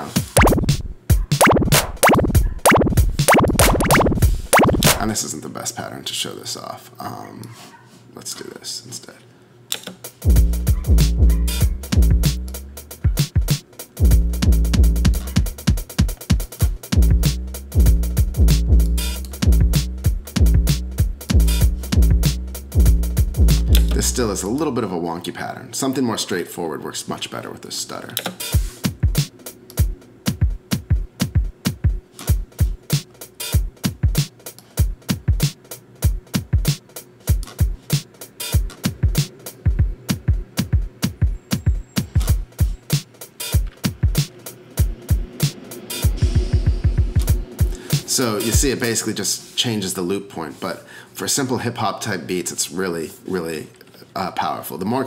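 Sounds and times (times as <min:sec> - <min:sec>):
electronic drum beat: 0:00.0 - 0:05.2, 0:10.2 - 0:24.2, 0:28.6 - 0:49.0
deep kick drums: 0:00.4 - 0:05.1, 0:10.3 - 0:12.4, 0:13.1 - 0:15.9, 0:17.0 - 0:23.8, 0:46.2 - 0:47.8
closed hi-hat ticks: 0:11.5 - 0:24.2, 0:28.2 - 0:30.0, 0:41.6 - 0:49.0.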